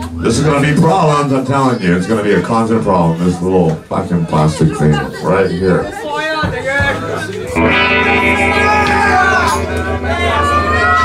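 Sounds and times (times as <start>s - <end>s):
electric guitar chord ringing: 7.5s - 11.0s.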